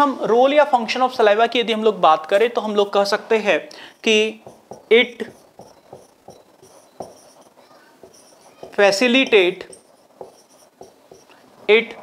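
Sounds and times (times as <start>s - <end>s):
marker pen on whiteboard: 3.8s - 11.4s.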